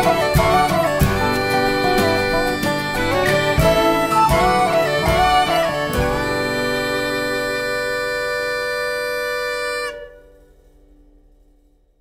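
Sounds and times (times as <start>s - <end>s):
band playing: 0.0s - 10.2s
bagpipes holding a note: 0.0s - 10.4s.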